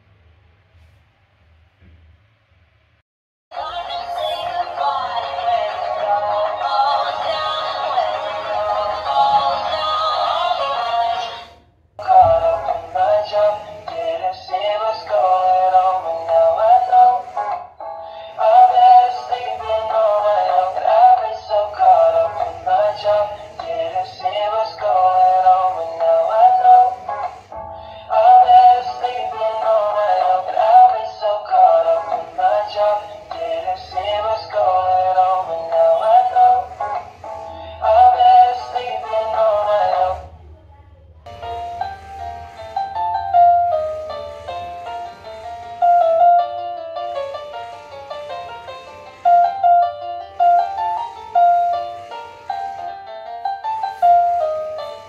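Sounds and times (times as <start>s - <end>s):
toy speaker playing song with singing: 3.5s - 17.7s, 18.3s - 40.4s, 41.3s - 55.0s.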